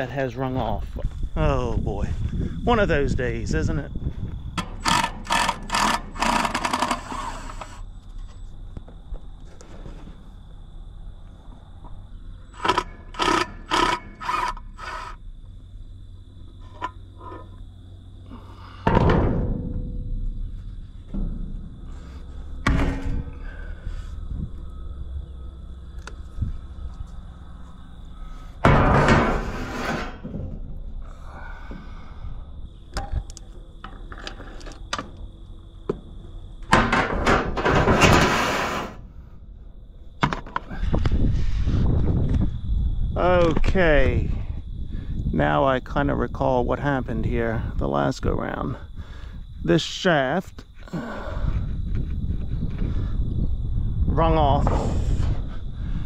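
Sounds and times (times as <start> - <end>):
cordless drill whirring: 4.8 - 7.8, 12.6 - 15.2
metal clanks and scrapes: 16.6 - 17.6, 28.6 - 30.6, 36.7 - 39.0.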